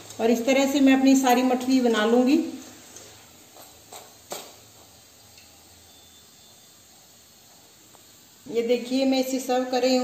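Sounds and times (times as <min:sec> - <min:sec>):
hot oil hissing: 0:00.0 - 0:10.0.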